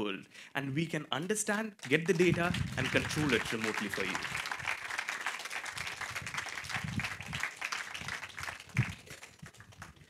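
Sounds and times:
audience applauding: 1.8 - 10.0.

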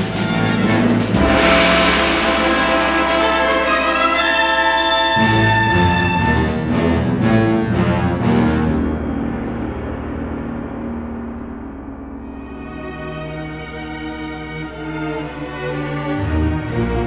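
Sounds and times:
heavy percussion hits: 0.0 - 15.4
orchestral music with held chords: 0.0 - 17.0.

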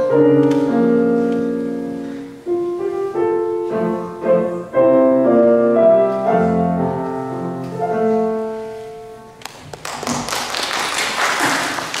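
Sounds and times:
audience applauding: 9.5 - 12.0.

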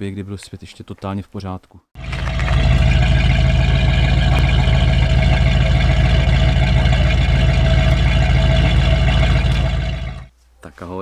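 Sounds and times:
engine deep even rumble: 2.0 - 10.3.

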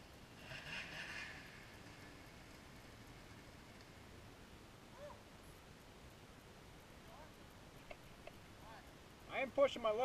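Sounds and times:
distant snowmobile engine: 0.0 - 4.3.

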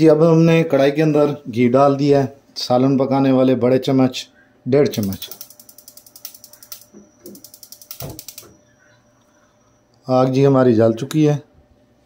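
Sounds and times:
gas hob igniter clicking: 5.0 - 8.5.

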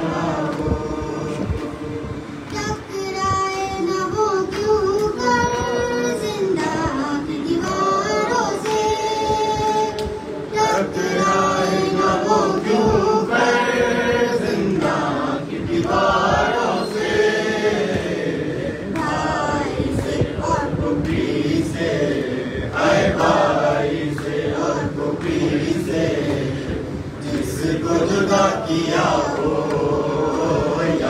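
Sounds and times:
boy chanting into a microphone: 0.0 - 26.0, 26.7 - 31.0
voices singing in chorus: 0.0 - 31.0.

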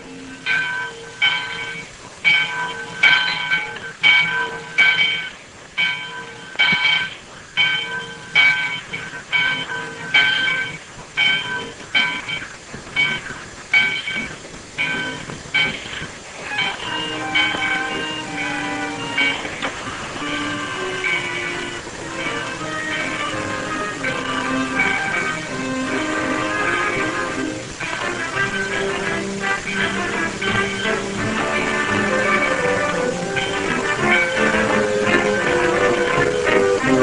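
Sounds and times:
rhythmic ringing clang: 0.0 - 37.0
steam train passing: 0.0 - 37.0.

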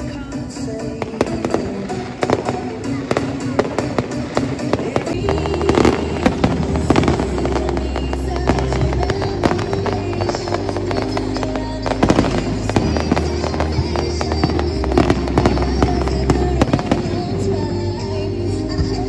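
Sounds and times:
fireworks bursting and crackling: 0.0 - 19.0
music with deep bass: 0.0 - 19.0.

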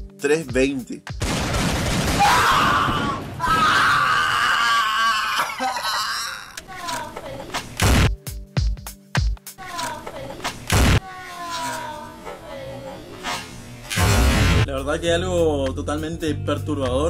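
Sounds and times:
music: 0.0 - 1.2, 6.7 - 11.0, 12.5 - 17.0
voices: 9.6 - 13.3.

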